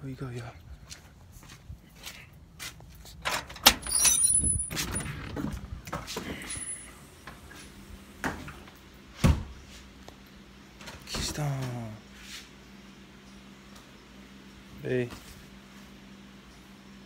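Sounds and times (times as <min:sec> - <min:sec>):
door squeak: 0:03.6 - 0:05.5.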